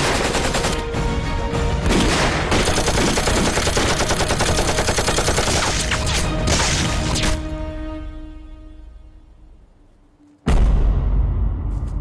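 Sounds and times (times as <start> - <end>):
machine-gun fire: 1.9 - 6.0.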